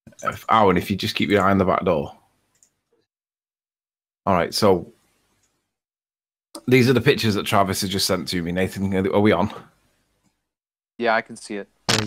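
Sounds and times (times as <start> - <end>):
faint mouse clicks: 2.5 - 3.1.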